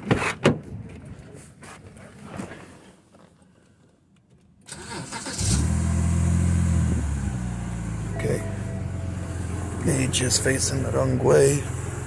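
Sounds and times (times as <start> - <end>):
car engine starting: 4.7 - 12.0
car engine idling: 5.5 - 12.0.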